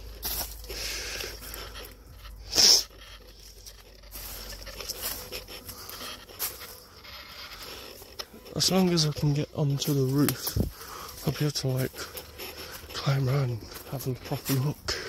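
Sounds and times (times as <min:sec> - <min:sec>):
footsteps on dry leaves: 0:00.0 - 0:15.0.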